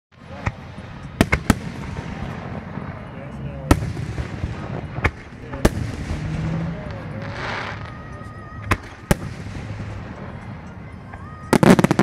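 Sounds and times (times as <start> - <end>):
sharp bangs: 0.4 - 7.8.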